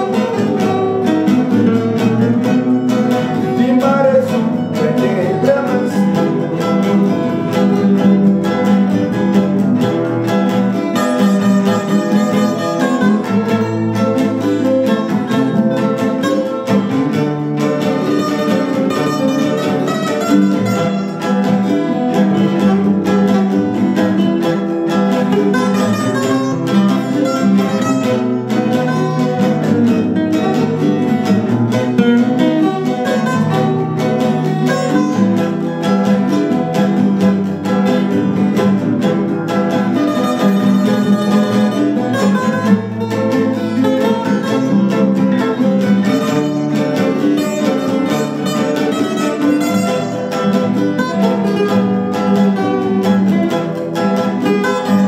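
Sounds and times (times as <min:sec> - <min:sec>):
nylon-string acoustic guitars playing: 0:00.0 - 0:55.0.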